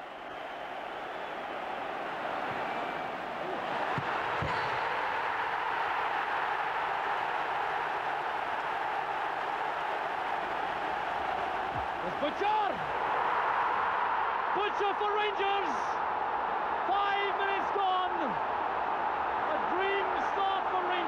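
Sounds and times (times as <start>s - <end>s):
stadium crowd roar: 0.0s - 21.0s.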